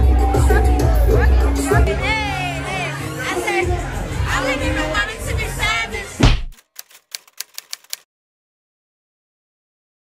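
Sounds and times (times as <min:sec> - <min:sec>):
club music: 0:00.0 - 0:05.8
crowd noise: 0:00.0 - 0:08.0
typewriter key clicks: 0:06.5 - 0:08.0.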